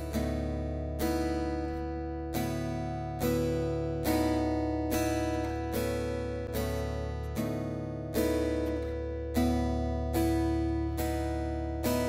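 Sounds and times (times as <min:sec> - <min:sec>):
plucked acoustic guitar chords: 0:00.0 - 0:12.0.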